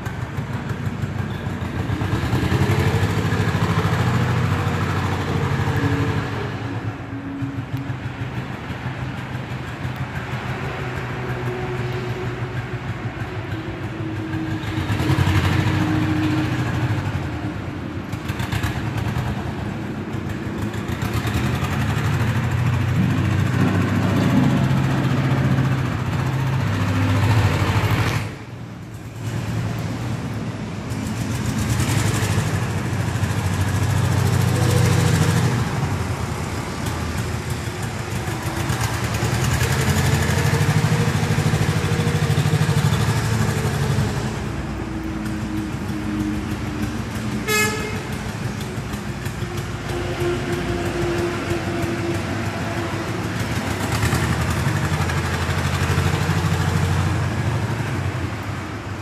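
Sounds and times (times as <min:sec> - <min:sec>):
vehicle engine running: 0:00.0 - 0:58.4.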